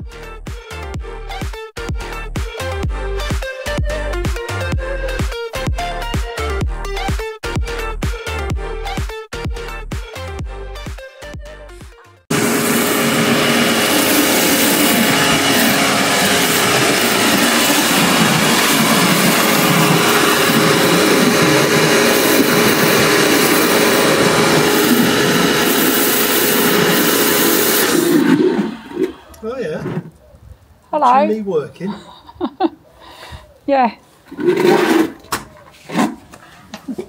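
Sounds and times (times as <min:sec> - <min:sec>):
intro music: 0:00.0 - 0:29.3
pressure washer motor hum: 0:12.3 - 0:30.1.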